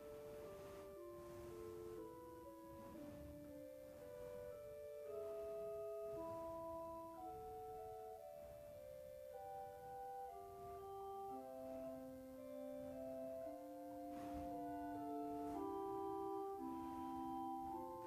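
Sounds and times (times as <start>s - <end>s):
pipe organ fugue: 0.0s - 18.0s.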